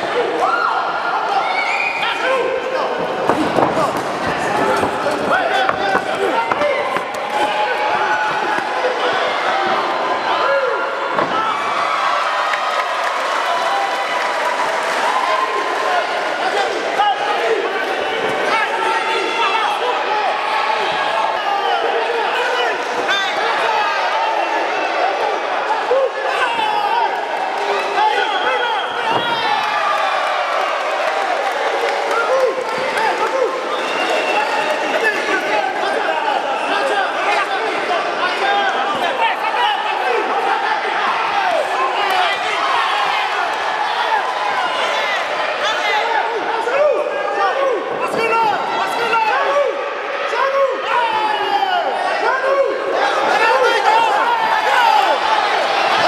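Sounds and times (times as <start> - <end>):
crowd shouting: 0.0 - 56.0.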